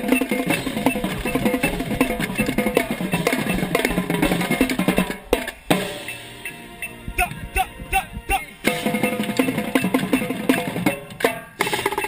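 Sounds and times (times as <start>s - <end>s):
marching band playing: 0.0s - 12.0s
tenor drums struck rapidly: 0.0s - 12.0s.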